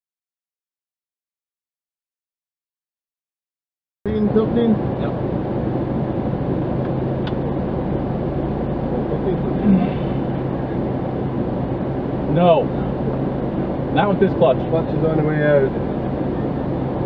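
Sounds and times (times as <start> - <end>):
car engine idling: 4.1 - 17.0.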